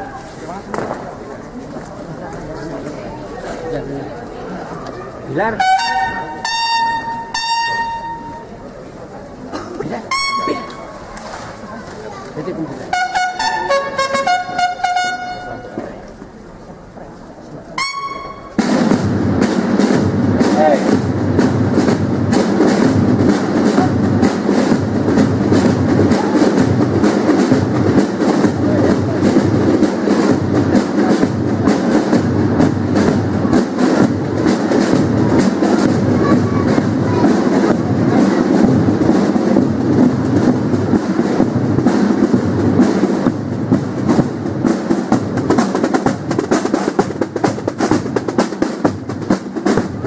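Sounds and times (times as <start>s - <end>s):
fife and drum march: 0.0s - 50.0s.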